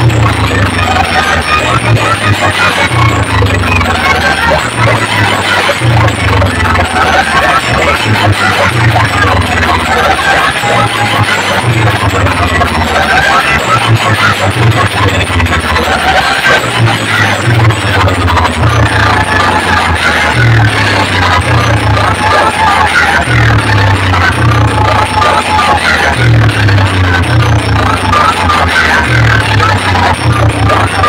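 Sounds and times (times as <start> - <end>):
loud electronic dance music: 0.0 - 31.0.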